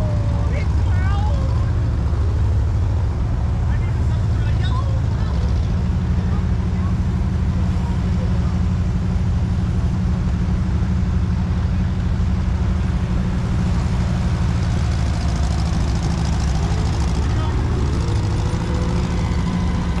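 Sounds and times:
threshing machine rumbling: 0:00.0 - 0:20.0.

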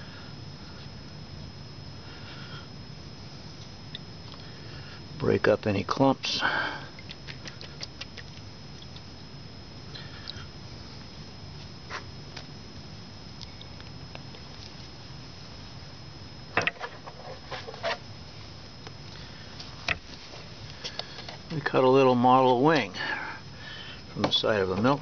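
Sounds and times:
faint background hum: 0:00.0 - 0:25.0
thin high whine: 0:00.0 - 0:25.0.

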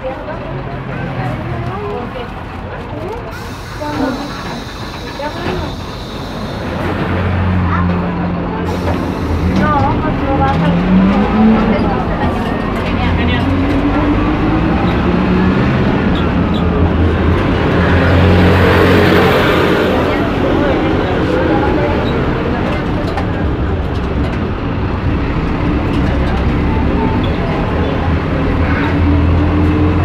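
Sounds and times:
bus engine running: 0:00.0 - 0:30.0.

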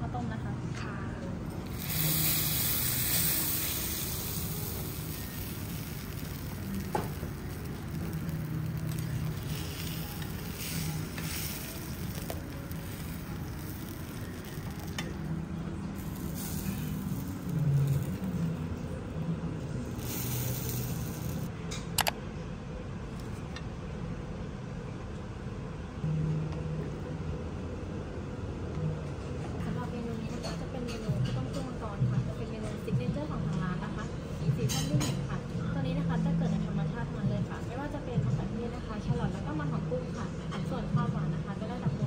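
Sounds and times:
food sizzling: 0:01.6 - 0:18.8, 0:19.8 - 0:21.5.

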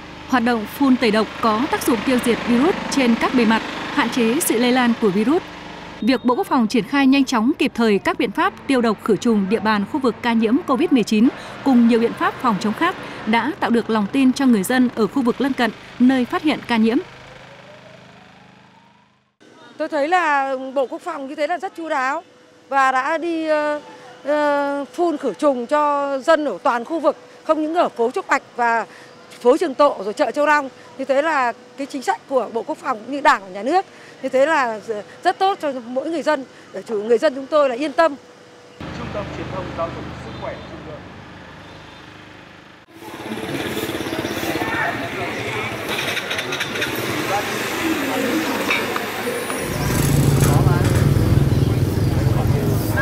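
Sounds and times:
sprayer motor running: 0:00.0 - 0:10.1, 0:10.7 - 0:19.0
truck engine humming: 0:00.0 - 0:19.4, 0:38.2 - 0:53.0
motorbike engines: 0:00.0 - 0:53.0
street noise: 0:00.0 - 0:53.0.

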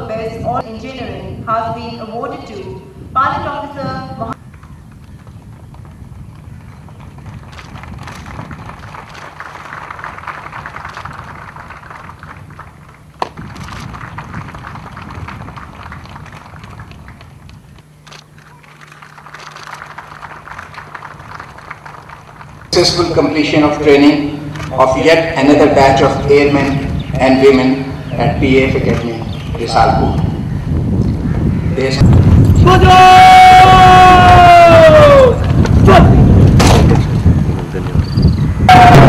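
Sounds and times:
audience applauding: 0:06.7 - 0:17.5, 0:18.4 - 0:23.0.

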